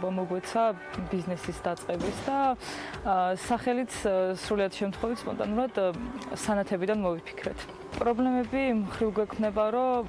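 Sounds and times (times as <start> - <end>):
woman talking: 0.0 - 10.0.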